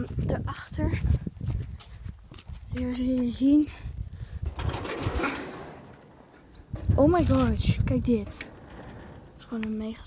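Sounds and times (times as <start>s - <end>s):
girl's voice: 0.0s - 1.2s, 2.7s - 3.9s, 6.8s - 8.6s, 9.4s - 10.0s.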